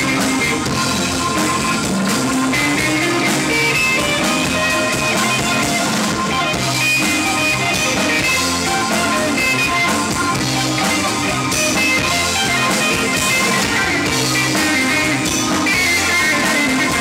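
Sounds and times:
bass guitar: 0.0s - 17.0s
drum kit: 0.0s - 17.0s
electric guitar: 0.0s - 17.0s
hammond organ: 0.0s - 17.0s.

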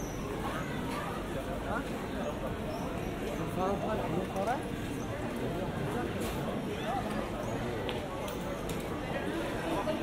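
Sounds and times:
passers-by talking: 0.0s - 10.0s.

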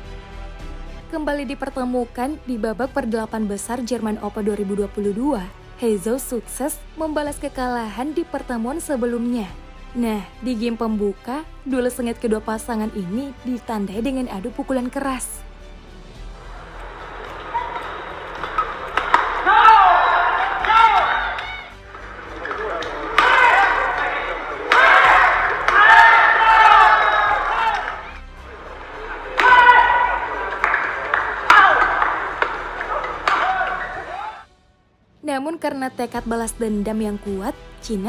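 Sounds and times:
background music: 0.0s - 38.0s
broadcast voices: 16.4s - 25.8s
racket hitting shuttlecock: 17.3s - 26.3s, 29.4s - 34.1s.

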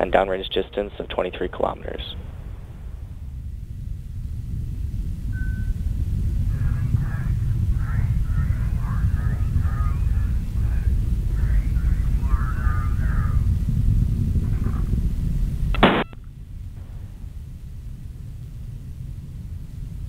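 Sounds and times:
radio voice chatter: 0.0s - 2.2s, 10.7s - 13.5s
rocket engines rumbling: 0.0s - 20.0s
short beep: 15.8s - 16.2s.

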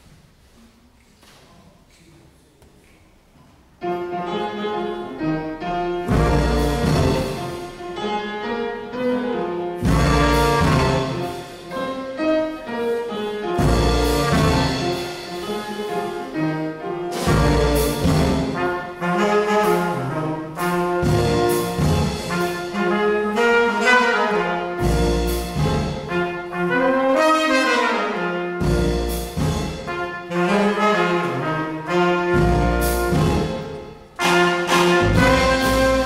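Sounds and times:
small jazz band playing: 3.8s - 36.0s.

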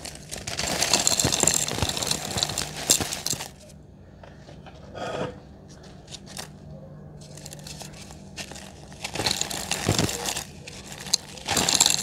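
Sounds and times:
cement chunk crumbling by hand: 0.0s - 3.7s, 7.2s - 12.0s.

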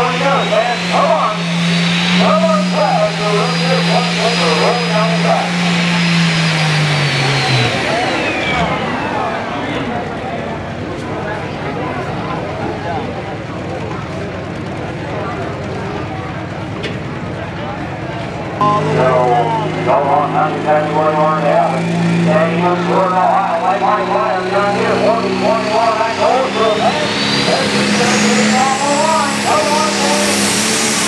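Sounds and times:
diesel engine revving down: 0.0s - 31.0s
turbocharger whine: 0.0s - 31.0s.

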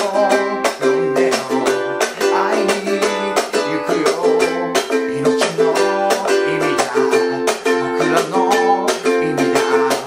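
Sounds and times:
ukulele strumming: 0.0s - 10.0s.

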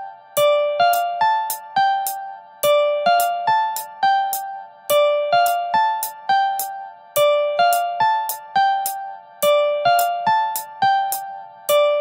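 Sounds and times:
plucked synth melody: 0.4s - 12.0s.

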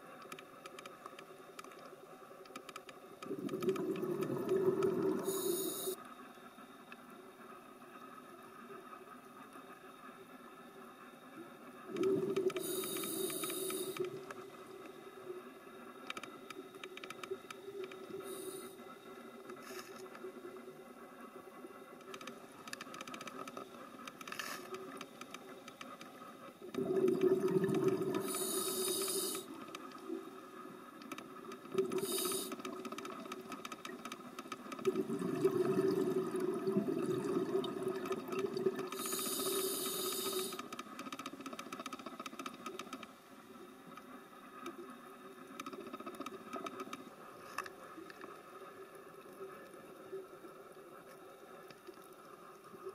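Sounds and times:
faint steady crackle: 0.0s - 52.9s
bubbling exhalations: 3.2s - 5.5s, 11.9s - 13.0s, 26.8s - 29.4s, 34.9s - 39.0s
hissing regulator inhalations: 3.3s - 6.0s, 11.9s - 14.3s, 18.1s - 18.8s, 26.8s - 29.6s, 31.8s - 32.8s, 38.9s - 40.8s.

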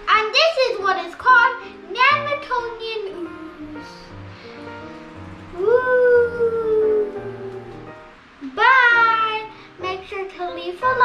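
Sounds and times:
child singing wordless notes: 0.0s - 4.2s, 5.5s - 11.0s
background music: 0.0s - 11.0s.

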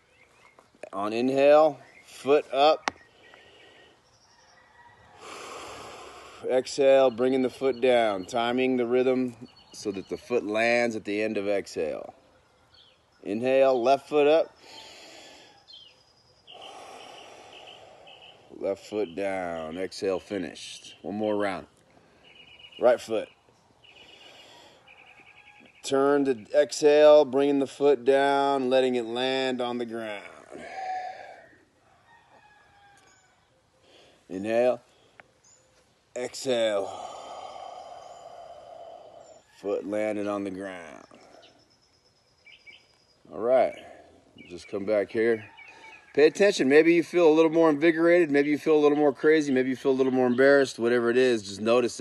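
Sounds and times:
slow deep breathing: 3.0s - 6.6s, 14.5s - 18.6s, 21.8s - 22.8s, 23.8s - 25.8s, 30.0s - 31.8s, 32.4s - 35.7s, 36.6s - 39.6s, 40.8s - 41.9s, 45.4s - 46.1s
slow breathy exhale: 5.1s - 6.5s, 14.6s - 18.5s, 23.9s - 25.2s, 36.8s - 39.5s
faint chirps: 14.5s - 19.7s, 30.1s - 45.0s.

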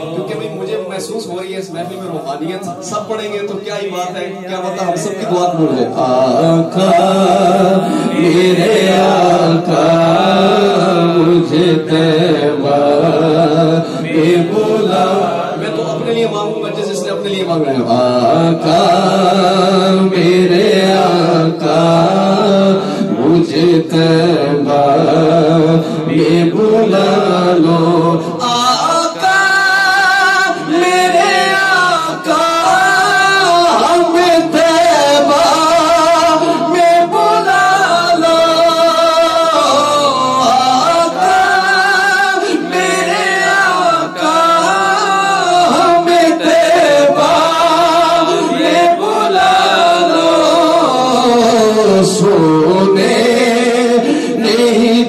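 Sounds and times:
man singing into a microphone: 0.0s - 1.9s, 2.8s - 55.0s
men humming a low drone: 6.2s - 15.6s.

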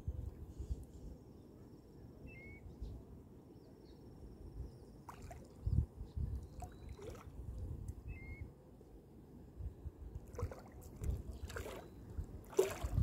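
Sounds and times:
wind rumble on microphone: 0.0s - 3.2s, 4.2s - 8.5s, 9.4s - 13.0s
small waves lapping on rocks: 10.3s - 13.0s.

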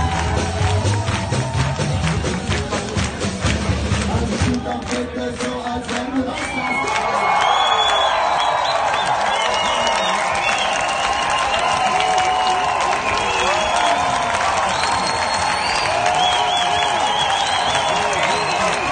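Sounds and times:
crowd applauding and cheering: 0.0s - 18.9s
whoops and shouts: 6.3s - 18.9s.

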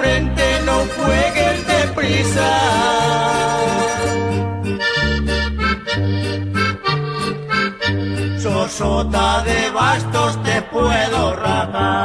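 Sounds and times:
instrumental melody: 0.0s - 11.7s
bass line: 0.0s - 12.0s.

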